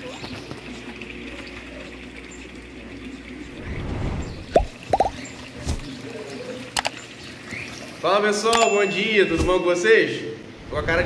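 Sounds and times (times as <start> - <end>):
water running into fish tanks: 0.0 - 11.0
water plops: 4.4 - 7.0.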